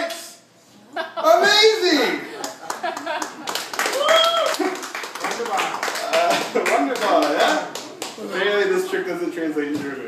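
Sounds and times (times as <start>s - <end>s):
audience clapping: 2.4s - 8.2s.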